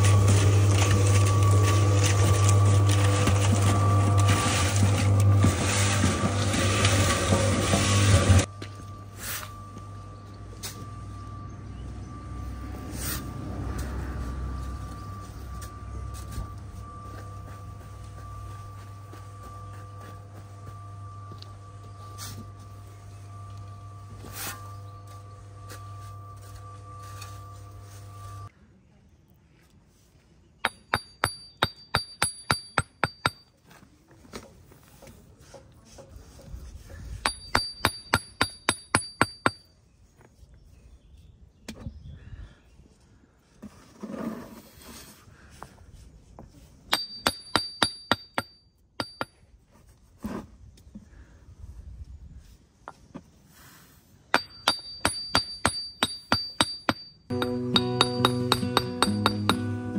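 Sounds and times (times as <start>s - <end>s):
steel trowel blade ringing: 30.6s - 33.6s, 37.2s - 39.7s, 46.9s - 49.4s, 54.4s - 59.9s.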